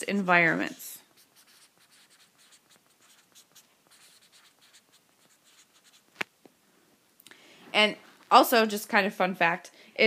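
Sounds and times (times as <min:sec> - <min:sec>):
writing on glass touchscreen: 0:01.1 - 0:06.1.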